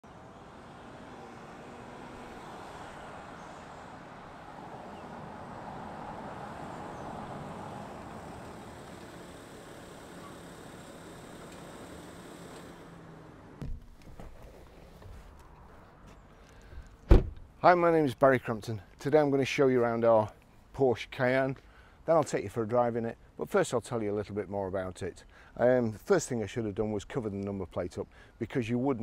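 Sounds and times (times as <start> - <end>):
car engine and tyre noise: 0.0 - 17.6
short thump: 13.6 - 14.6, 16.7 - 17.5.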